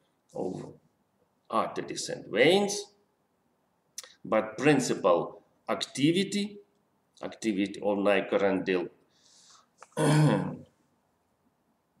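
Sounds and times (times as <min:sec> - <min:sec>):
man clearing throat: 0:10.0 - 0:10.6.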